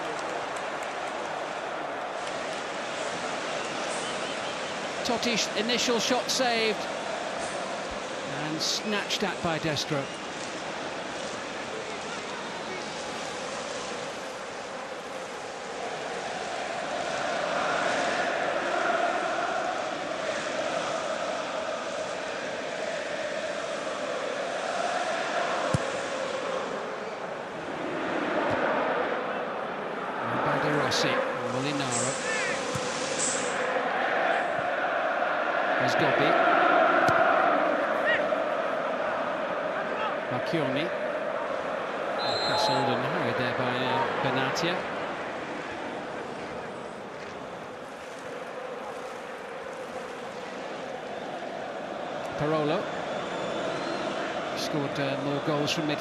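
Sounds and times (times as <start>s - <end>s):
crowd chanting and singing: 0.0s - 56.0s.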